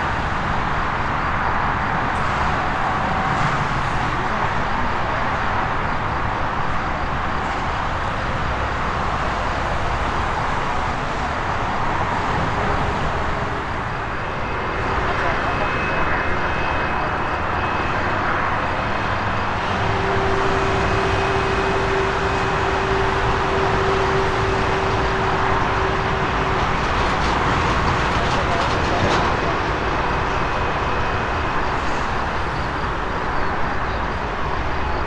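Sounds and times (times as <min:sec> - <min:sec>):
distant jet roar: 0:10.8 - 0:33.7.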